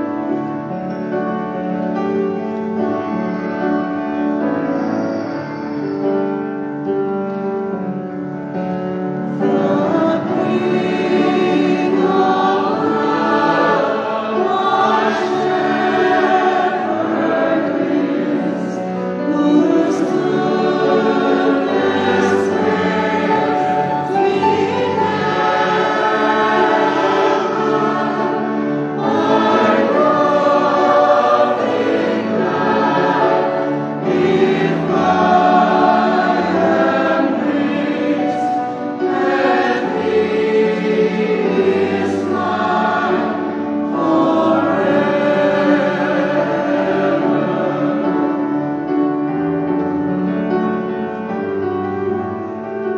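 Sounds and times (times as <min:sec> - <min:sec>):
choir singing a hymn: 0:00.0 - 0:52.9.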